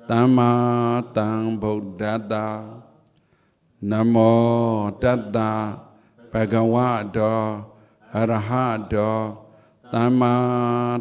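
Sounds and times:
man chanting: 0.0s - 3.0s, 3.8s - 11.0s.

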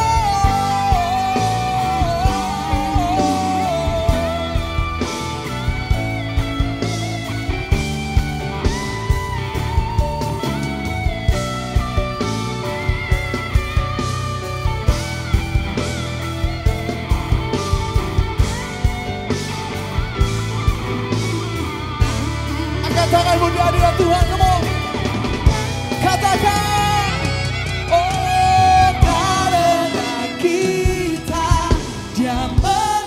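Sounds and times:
guitar melody: 0.0s - 33.0s
steady drum beat: 0.0s - 33.0s.

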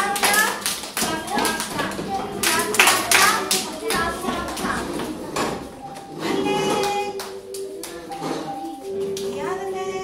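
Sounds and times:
children and adult clapping: 0.0s - 6.1s, 6.7s - 8.3s.

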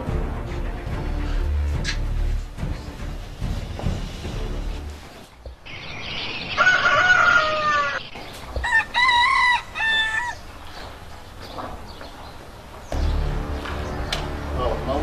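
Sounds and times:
rooster crowing: 6.5s - 10.6s.

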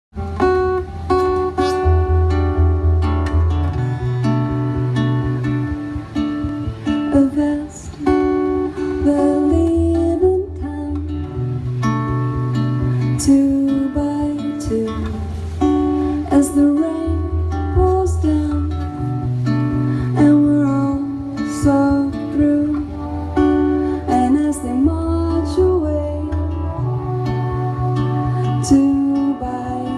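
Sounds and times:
strummed acoustic guitar: 0.2s - 29.9s.

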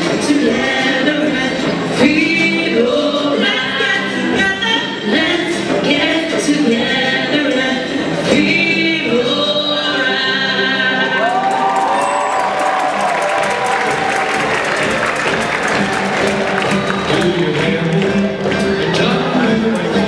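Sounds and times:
woman singing: 0.0s - 11.8s
audience applause and cheering: 11.0s - 19.7s.

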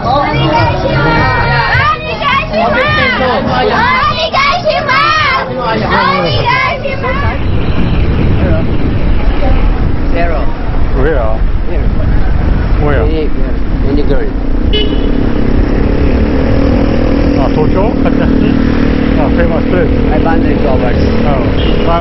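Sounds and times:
people talking on street: 0.0s - 22.0s
vehicle engines running: 0.0s - 22.0s
car horn toot: 14.7s - 15.3s, 21.5s - 22.0s.

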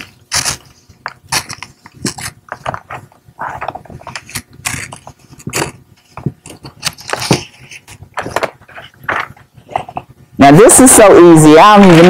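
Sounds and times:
scissors snipping paper: 0.0s - 5.8s
paper rustling: 0.0s - 10.1s.

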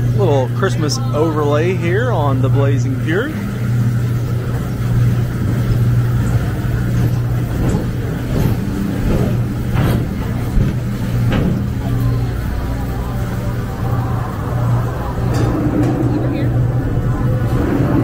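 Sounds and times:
ride car rumbling on track: 0.0s - 18.0s.

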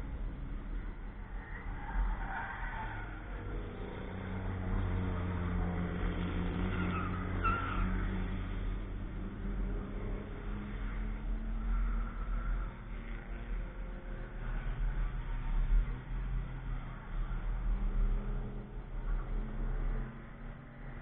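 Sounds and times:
distant car engines: 0.0s - 21.0s.

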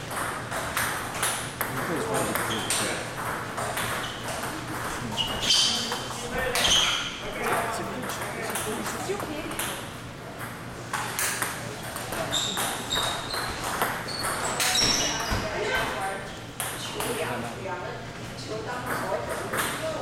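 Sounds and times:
table tennis balls clicking: 0.0s - 5.0s, 7.3s - 15.3s
voices in background: 1.7s - 10.0s, 11.2s - 20.0s.

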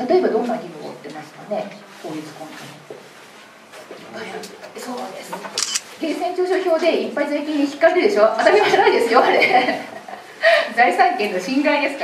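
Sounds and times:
short sharp clicks: 5.6s - 5.9s.

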